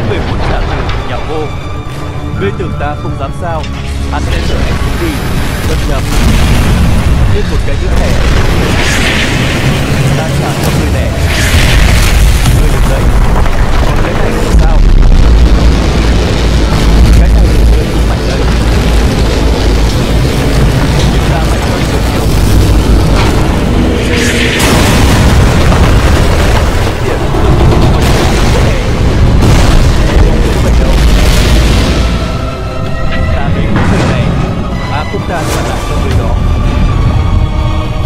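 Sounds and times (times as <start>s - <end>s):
deep booming explosion rumble: 0.0s - 38.0s
music: 0.0s - 38.0s
rushing blast: 0.0s - 38.0s.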